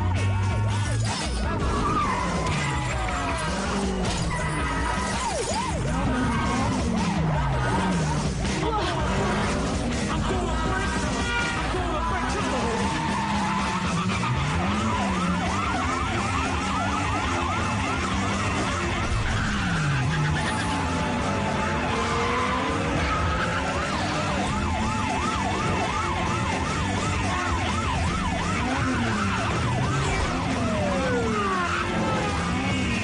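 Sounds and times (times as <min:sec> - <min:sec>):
car engine: 0:00.0 - 0:33.0
police sirens yelping: 0:00.0 - 0:33.0.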